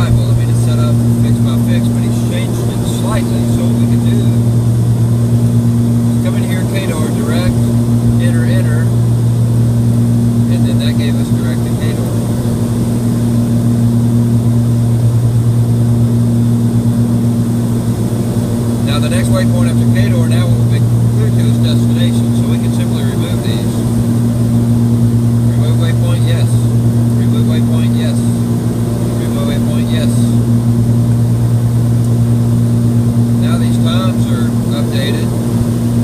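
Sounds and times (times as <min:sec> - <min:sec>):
airplane engine drone: 0:00.0 - 0:36.0.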